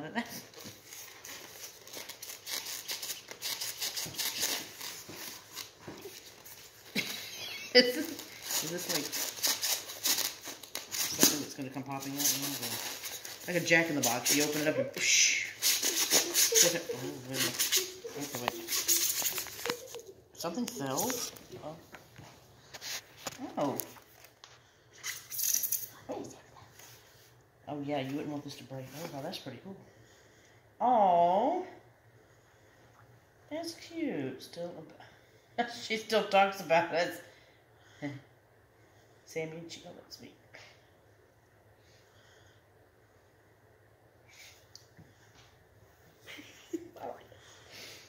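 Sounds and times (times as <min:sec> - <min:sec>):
styrofoam scraping and squeaking: 0:01.2 - 0:06.6, 0:15.3 - 0:20.0
styrofoam box rubbing: 0:15.4 - 0:19.9.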